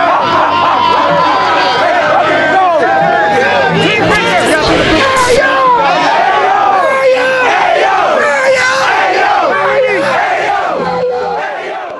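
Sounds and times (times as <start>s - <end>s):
crowd shouting and cheering: 0.0s - 11.9s.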